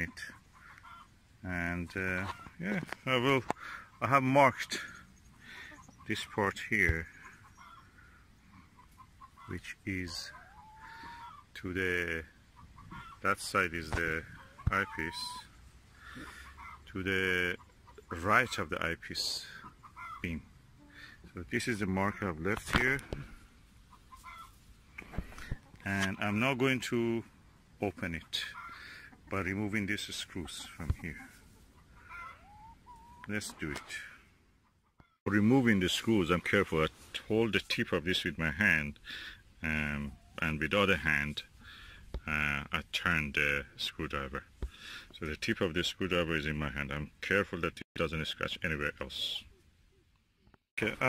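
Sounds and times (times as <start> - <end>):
hen calling: 0.0 - 42.4
chickens clucking: 0.0 - 47.1.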